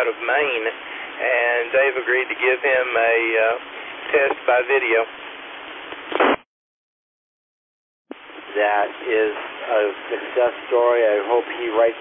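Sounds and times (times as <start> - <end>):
radio receiver hiss: 0.0 - 5.1, 5.7 - 6.4
radio noise burst: 6.0 - 6.4.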